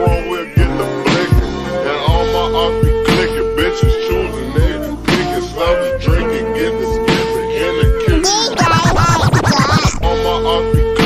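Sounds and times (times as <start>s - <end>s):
slowed hip hop track: 0.0s - 11.0s.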